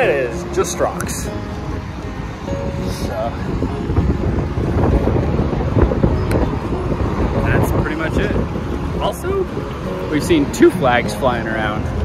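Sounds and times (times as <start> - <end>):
road traffic passing: 0.0 - 12.0
wind rumbling on microphone: 0.8 - 12.0.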